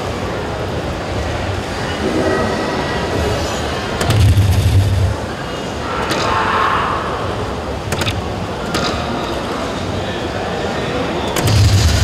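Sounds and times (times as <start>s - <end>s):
crowd hubbub: 0.0s - 12.0s
machine noise: 1.3s - 8.3s, 11.4s - 12.0s.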